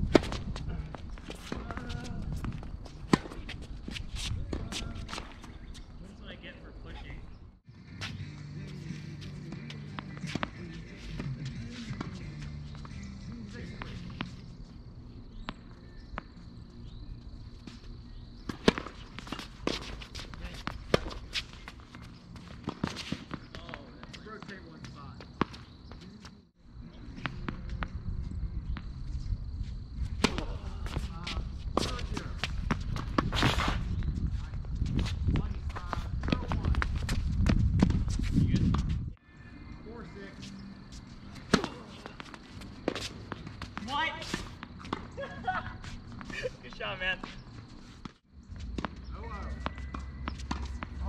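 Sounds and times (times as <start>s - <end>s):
tennis ball bouncing on hard court: 18.5s - 24.2s, 41.3s - 45.2s, 49.6s - 51.0s
tennis ball hitting racket: 18.5s - 24.2s, 30.2s - 31.1s, 40.8s - 45.2s, 49.6s - 51.0s.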